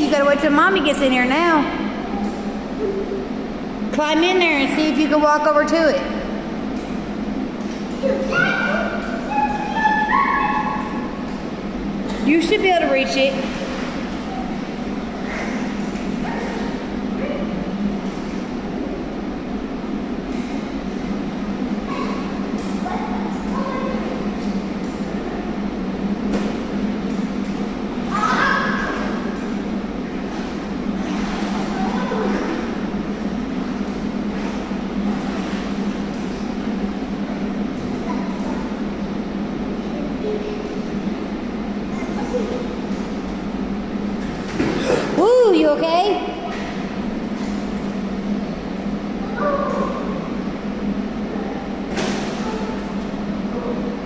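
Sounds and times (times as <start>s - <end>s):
indoor pool hum and hiss: 0.0s - 54.0s
water splashing: 12.0s - 18.5s, 26.2s - 39.1s.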